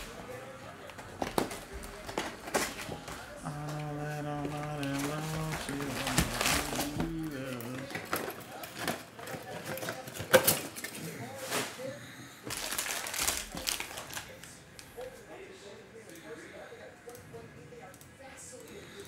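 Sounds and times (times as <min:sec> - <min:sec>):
plastic wrappers crinkling: 0:00.0 - 0:15.1
card packs clicking and knocking: 0:00.9 - 0:11.7, 0:12.5 - 0:14.4.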